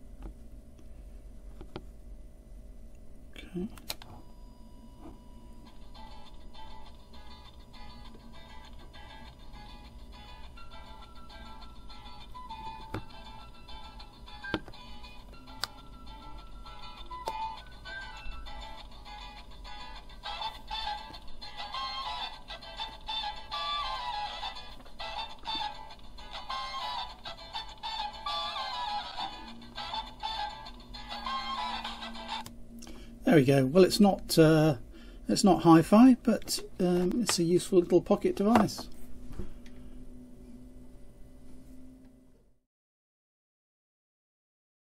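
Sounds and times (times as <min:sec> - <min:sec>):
music through small speaker: 0:05.6 - 0:32.6.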